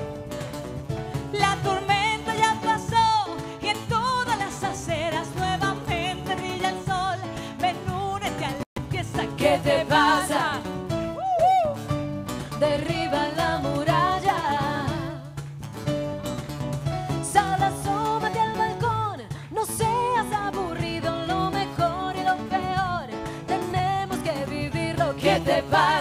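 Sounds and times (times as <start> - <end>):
live band with guitar: 0.0 - 26.0
women singing: 1.3 - 10.9, 12.5 - 15.4, 17.2 - 26.0.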